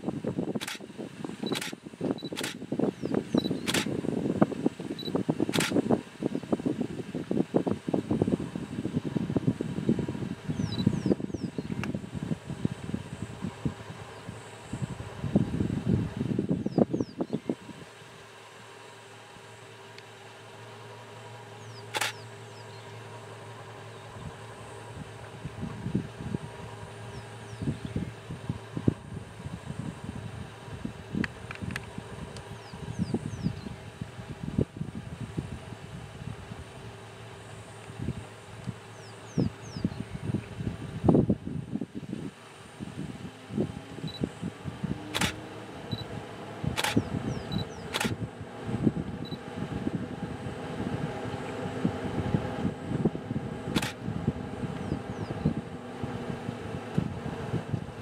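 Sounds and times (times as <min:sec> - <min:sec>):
faint hum with high tone: 0:00.0 - 0:58.0
sharp click: 0:00.6 - 0:00.8, 0:01.4 - 0:02.6, 0:03.4 - 0:03.9, 0:05.5 - 0:05.8, 0:21.8 - 0:22.2, 0:45.1 - 0:45.4, 0:46.8 - 0:48.2, 0:53.8 - 0:54.0.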